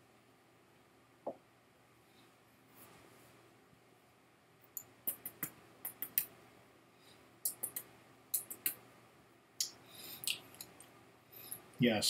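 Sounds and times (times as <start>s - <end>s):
wet mouth clicks and lip smacks: 9.6s - 10.9s.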